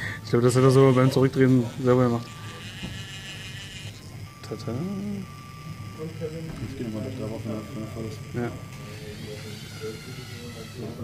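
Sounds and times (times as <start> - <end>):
motors and gears whirring: 0.0 - 11.0
voices in room: 0.0 - 11.0.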